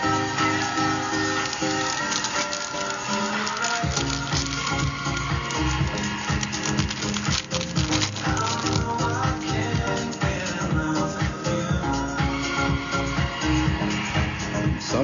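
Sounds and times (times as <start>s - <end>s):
pop music with beat: 0.0s - 15.0s.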